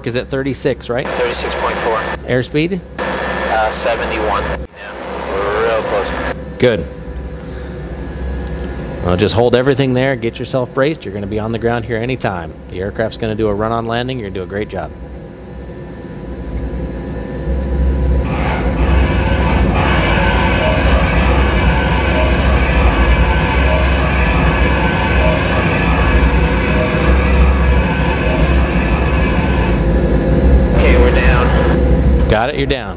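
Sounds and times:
helicopter rotor and turbine rumble: 1.0s - 32.9s.

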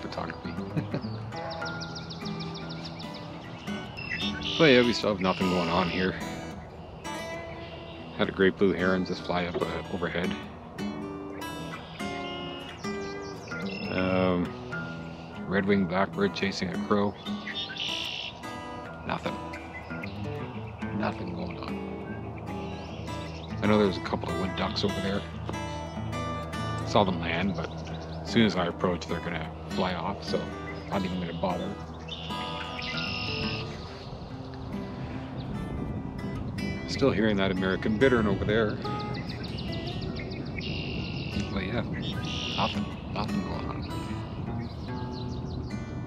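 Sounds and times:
background music: 0.0s - 46.0s
songbird trill: 0.0s - 46.0s
bird buzzy call: 0.6s - 15.6s, 17.1s - 21.0s, 21.6s - 35.5s, 38.8s - 45.8s.

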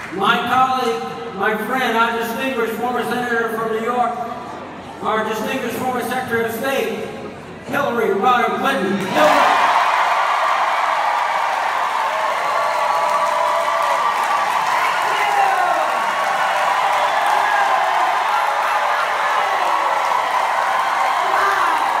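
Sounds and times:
crowd cheering and applauding: 9.1s - 22.0s.

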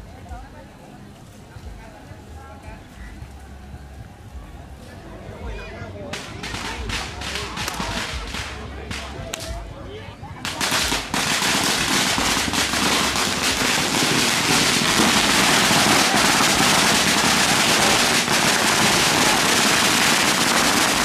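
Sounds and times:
firecrackers crackling: 6.0s - 9.7s, 10.3s - 21.0s.

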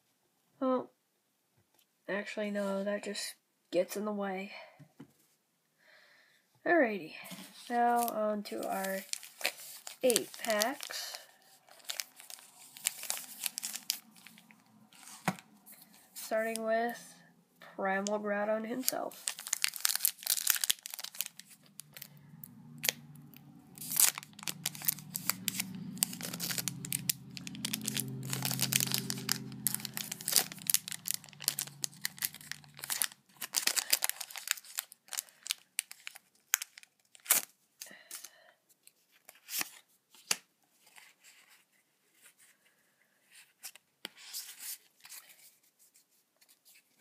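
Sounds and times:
cards being handled: 7.4s - 16.3s, 23.8s - 34.9s
foil wrapper crinkling and tearing: 7.5s - 16.6s, 18.8s - 38.3s, 39.2s - 41.0s.

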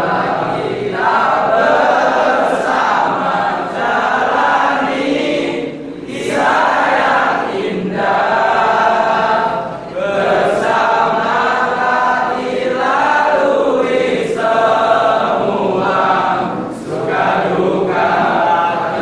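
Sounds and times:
young men singing in unison: 0.0s - 19.0s.

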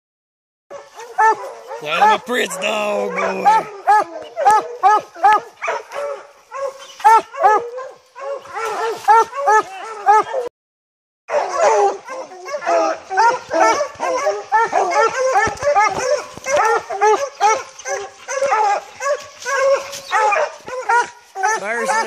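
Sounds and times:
dogs barking rapidly: 0.7s - 10.5s, 11.3s - 22.0s.

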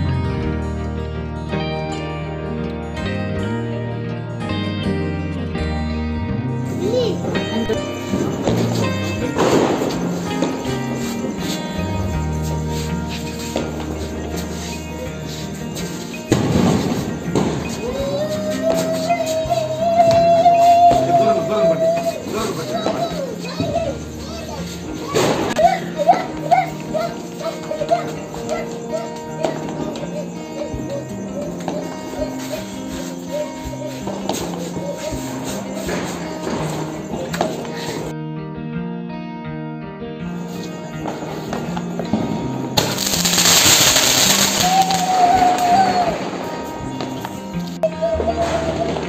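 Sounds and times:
background music: 0.0s - 49.0s
children's voices: 6.7s - 11.8s, 12.8s - 38.1s, 43.2s - 49.0s
firework spraying sparks hiss: 7.8s - 21.4s, 22.0s - 38.1s, 42.8s - 47.4s
firework wavering whistle: 7.8s - 22.9s, 42.8s - 46.8s
burst of noise: 42.8s - 46.6s.

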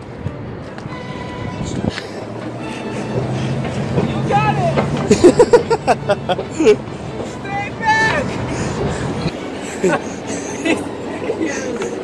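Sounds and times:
escalator rumbling: 0.0s - 12.0s.

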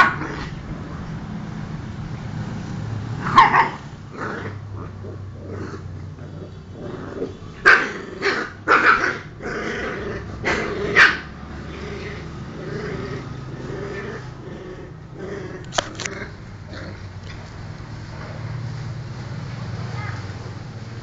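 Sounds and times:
dogs barking sharply: 0.0s - 0.6s, 3.2s - 3.9s, 7.2s - 9.6s, 10.4s - 11.6s
dogs growling: 3.2s - 17.2s.

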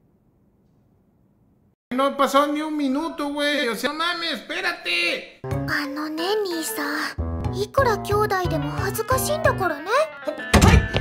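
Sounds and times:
light background music: 5.4s - 11.0s
character voice speaking: 5.7s - 10.5s.

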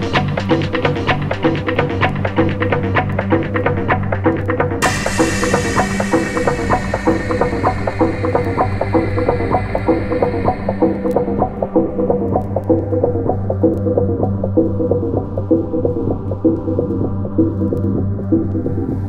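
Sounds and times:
electronic house music: 0.0s - 19.0s.

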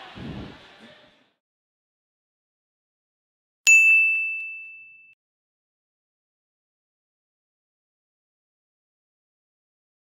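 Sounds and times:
bright bell-like ding: 3.7s - 5.2s.

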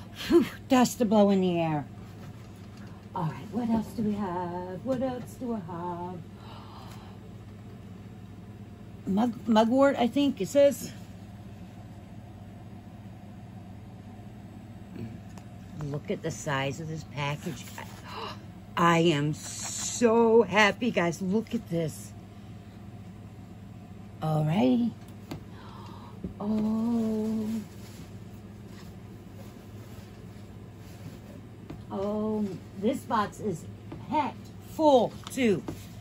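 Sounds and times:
low background hum: 0.0s - 36.0s
faint handling sounds: 26.3s - 33.2s.

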